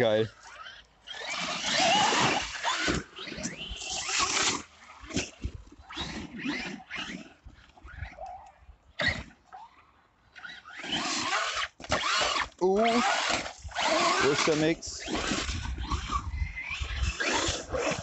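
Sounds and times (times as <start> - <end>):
electric motors whining: 0.4 - 9.3, 10.4 - 18.0.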